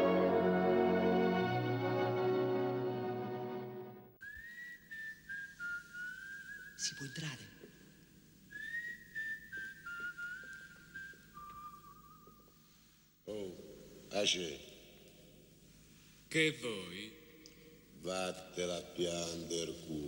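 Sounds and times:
film music: 0:00.0 - 0:04.2
man whistling a tune: 0:04.2 - 0:07.3, 0:08.5 - 0:12.5.

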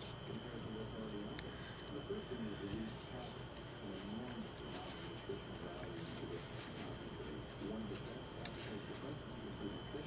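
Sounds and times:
faint wavering murmur: 0:00.0 - 0:10.0
room hum: 0:00.0 - 0:10.0
thin high whine: 0:00.0 - 0:10.0.

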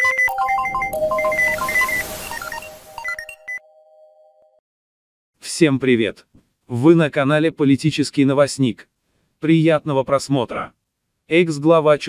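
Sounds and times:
electronic jingle of rapid beeps: 0:00.0 - 0:03.8
held tone: 0:00.0 - 0:03.9.

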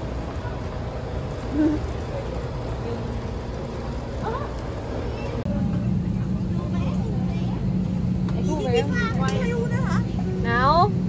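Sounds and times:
airliner cabin hum: 0:00.0 - 0:11.0
coach engine idling: 0:00.0 - 0:11.0
voices: 0:00.0 - 0:11.0.

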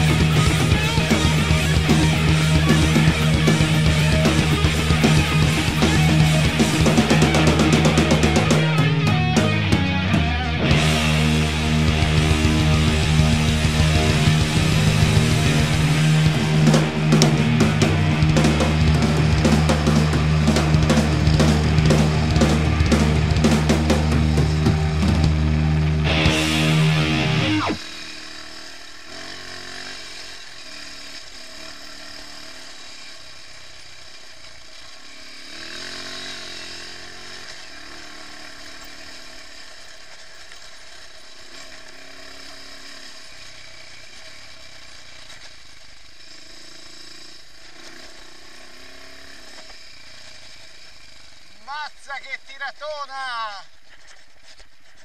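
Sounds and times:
rock music with drums: 0:00.0 - 0:28.1
motorcycle engine running: 0:00.0 - 0:52.0, 0:53.6 - 0:55.0.

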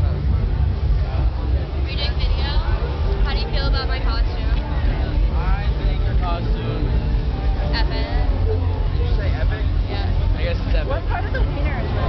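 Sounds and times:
loud low rumble: 0:00.0 - 0:12.0.

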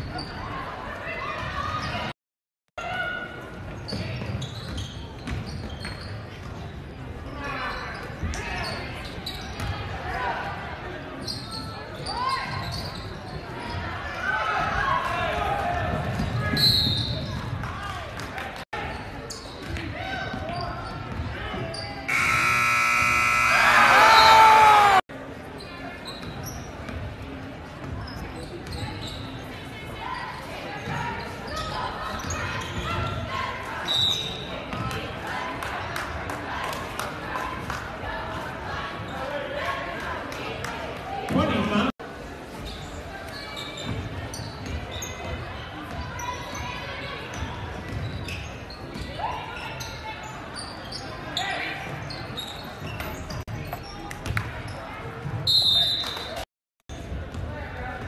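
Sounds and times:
sneakers squeaking on hardwood: 0:03.8 - 0:06.6, 0:27.8 - 0:29.4
crowd voices: 0:21.3 - 0:26.1
scoreboard horn: 0:22.1 - 0:25.0.

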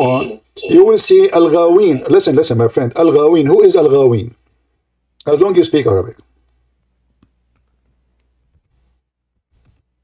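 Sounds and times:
man speaking: 0:00.0 - 0:04.4, 0:05.2 - 0:06.3.

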